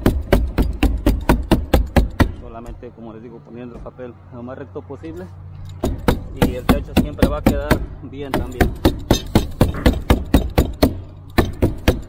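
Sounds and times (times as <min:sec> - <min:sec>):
hammer stapler strikes: 0:00.0 - 0:02.4, 0:05.7 - 0:12.0.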